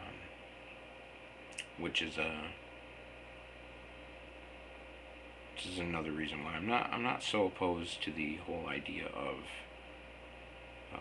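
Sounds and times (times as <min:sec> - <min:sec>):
steady hiss and low hum: 0:00.0 - 0:11.0.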